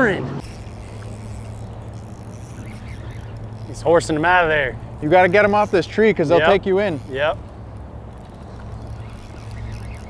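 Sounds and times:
boat motor humming: 0.0s - 10.0s.

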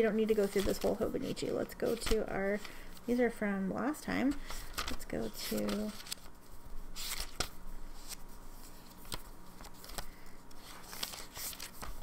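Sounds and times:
paper pages flipping: 0.3s - 2.7s, 4.4s - 12.0s.

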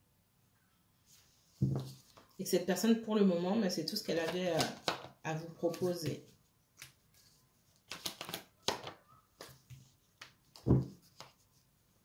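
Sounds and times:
card thumping on table: 1.6s - 2.0s, 10.6s - 11.0s
cards clicking: 7.9s - 9.6s.

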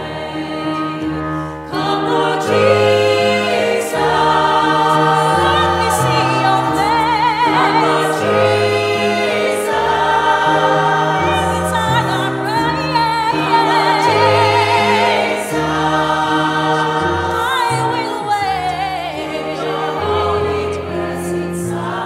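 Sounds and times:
sustained accompaniment chords: 0.0s - 22.0s
woman singing with vibrato: 5.0s - 8.4s, 11.1s - 14.9s, 17.4s - 19.5s.

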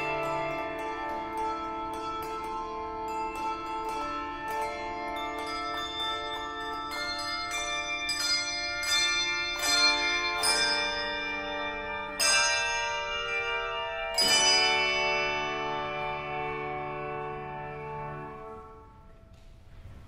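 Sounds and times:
handbell choir playing: 0.0s - 19.0s.

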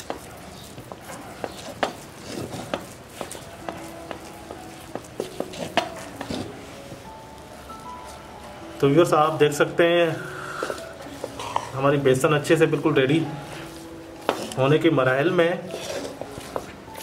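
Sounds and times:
wooden spatula stirring thick dough: 0.0s - 7.1s, 10.6s - 17.0s.

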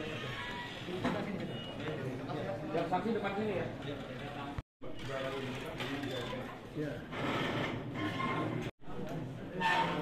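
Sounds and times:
indistinct chatter of people: 0.0s - 10.0s.

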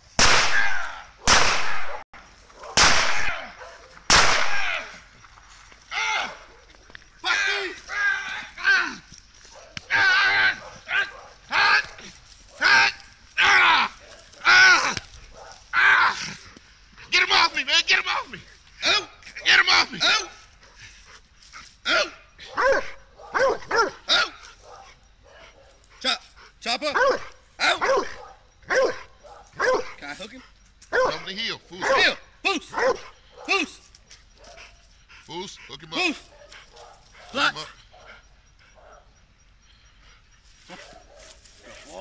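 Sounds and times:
dog barking: 0.6s - 4.0s, 9.5s - 13.0s, 13.9s - 14.6s, 15.3s - 15.7s, 21.9s - 25.8s, 26.9s - 30.0s, 30.9s - 33.7s, 34.4s - 34.8s, 36.2s - 39.2s, 40.7s - 41.9s.

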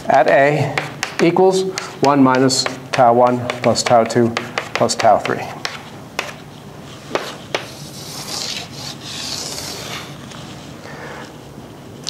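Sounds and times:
chalk tapping on blackboard: 0.1s - 6.4s, 7.1s - 8.6s
chalk scraping on blackboard: 0.2s - 10.2s.

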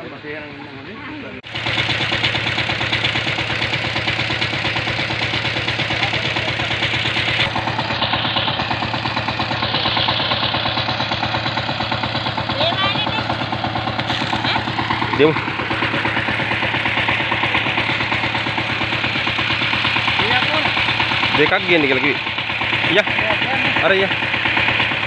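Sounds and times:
diesel engine idling: 0.0s - 25.0s.

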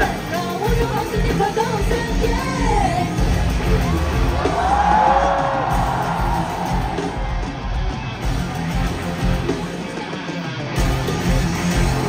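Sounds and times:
live pop music: 0.0s - 12.0s
crowd cheering: 3.2s - 12.0s.

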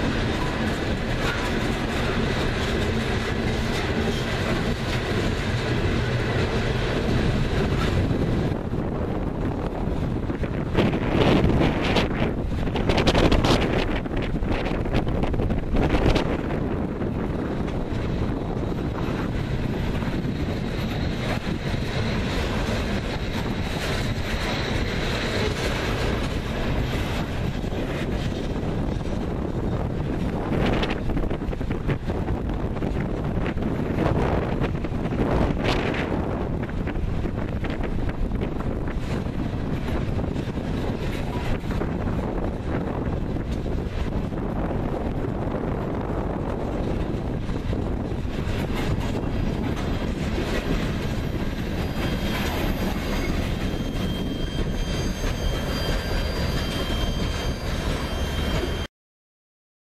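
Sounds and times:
wind buffeting microphone: 0.0s - 58.6s
freight train wheels clattering: 0.0s - 58.9s
high-pitched wheel squeal: 51.2s - 58.9s.

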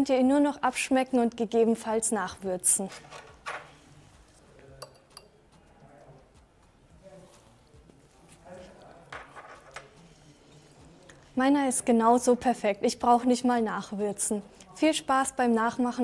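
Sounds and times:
soft clicks and clinks on ceramic bowl: 4.6s - 6.0s.

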